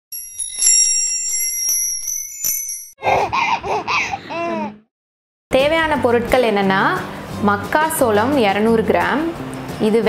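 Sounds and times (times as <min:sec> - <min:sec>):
bell-like jingle chimes: 0:00.1 - 0:03.0
baby babbling: 0:03.0 - 0:04.8.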